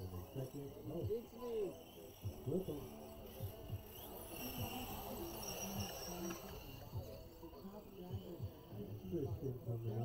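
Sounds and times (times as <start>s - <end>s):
faint low voices: 0.0s - 10.0s
toy truck motors whining: 0.0s - 10.0s.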